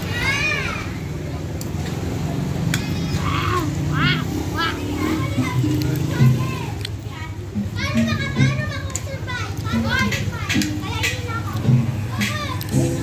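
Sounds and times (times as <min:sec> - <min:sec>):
children's voices calling: 0:00.0 - 0:13.0
background music: 0:09.8 - 0:13.0.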